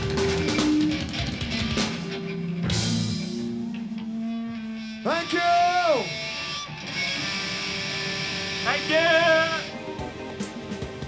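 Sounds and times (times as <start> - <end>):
punk rock band playing: 0.0 - 11.0
singer shouting through pa: 8.6 - 9.7.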